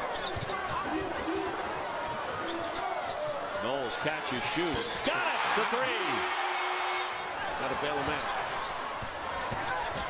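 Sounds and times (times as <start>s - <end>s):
arena crowd shouting: 3.6s - 8.5s.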